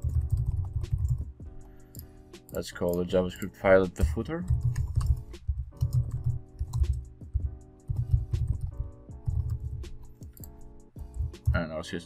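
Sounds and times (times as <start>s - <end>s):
keyboard typing: 0.0s - 7.1s, 7.8s - 11.6s
background music with strong bass: 3.9s - 11.7s.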